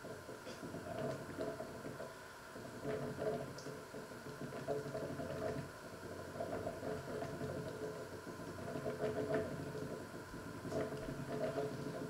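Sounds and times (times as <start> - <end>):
water boiling in pots: 0.0 - 12.0.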